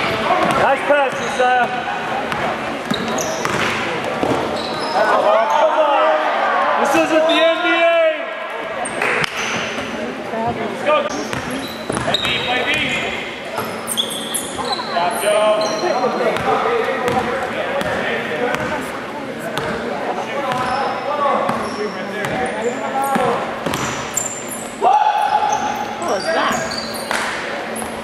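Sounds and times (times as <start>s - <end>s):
sneakers squeaking: 0.0s - 5.8s, 8.6s - 28.0s
indistinct shouts echoing: 24.8s - 26.0s.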